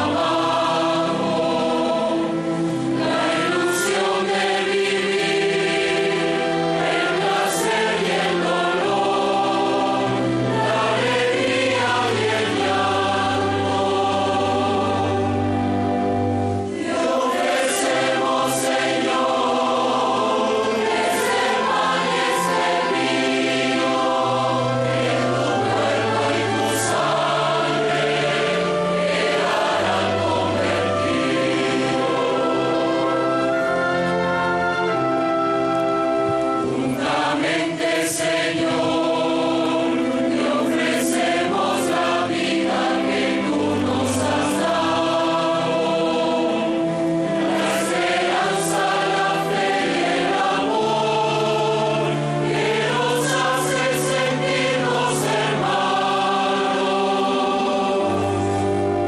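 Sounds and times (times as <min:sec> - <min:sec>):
choir singing a hymn: 0:00.0 - 0:59.0
string orchestra: 0:00.0 - 0:59.0.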